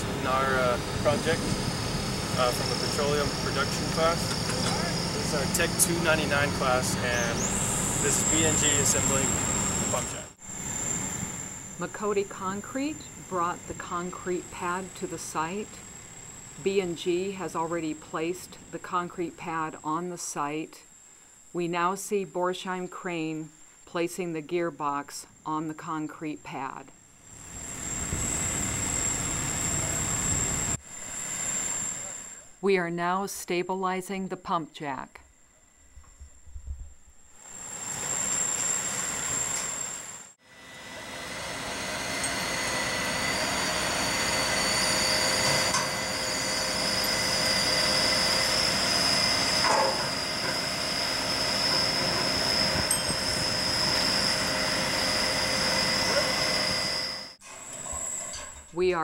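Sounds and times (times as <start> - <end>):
crane engine running: 0.0 - 18.8, 27.3 - 32.4, 37.4 - 58.4
high-pitched whine: 0.0 - 21.6, 26.4 - 32.6, 35.4 - 58.8.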